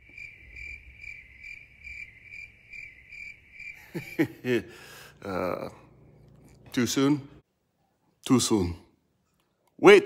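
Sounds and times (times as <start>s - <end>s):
crickets chirping: 0.0s - 6.1s.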